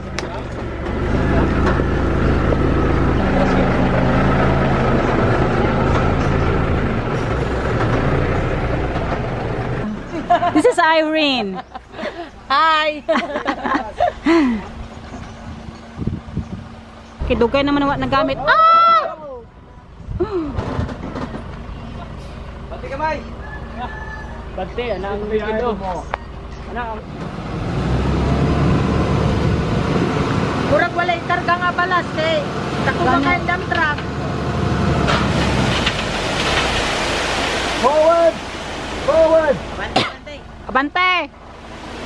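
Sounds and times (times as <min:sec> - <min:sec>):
diesel truck engine running: 0:00.0 - 0:42.0.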